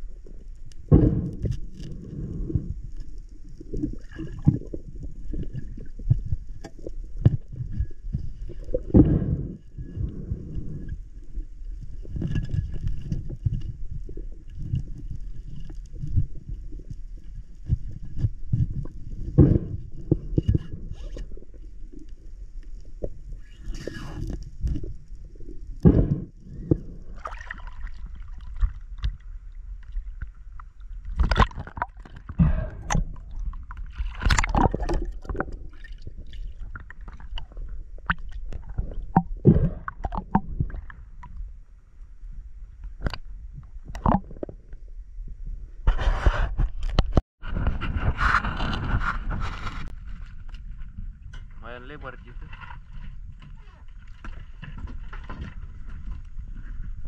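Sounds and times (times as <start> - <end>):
muffled underwater rumbling: 0.0 - 57.0.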